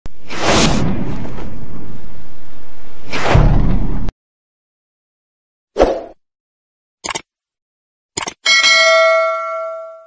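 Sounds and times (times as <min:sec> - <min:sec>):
notification bell chime: 0:08.5 - 0:10.0.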